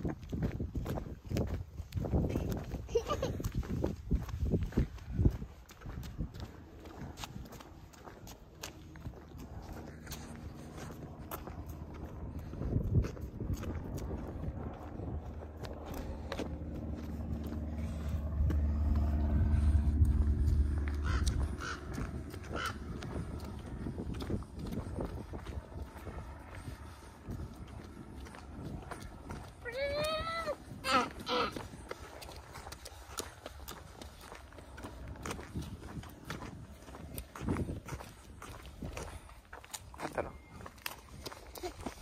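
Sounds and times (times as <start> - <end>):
footsteps on asphalt: 0.0 - 42.0
low engine hum: 0.0 - 42.0
wind rumbling on microphone: 0.0 - 42.0.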